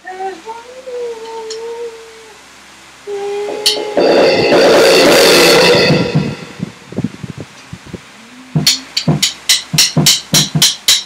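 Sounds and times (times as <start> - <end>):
electronic drum kit hits: 4.0 - 6.9
rock music track: 4.0 - 6.9.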